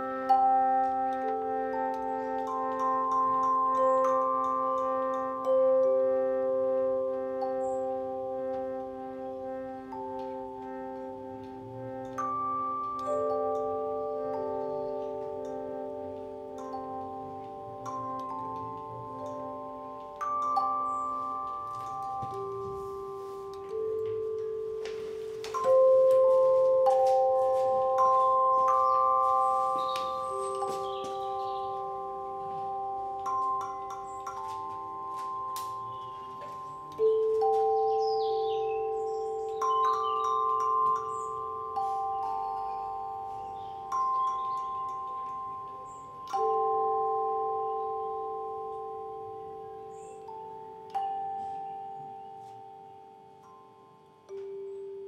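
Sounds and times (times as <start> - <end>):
tone chimes ringing: 0.0 - 55.0.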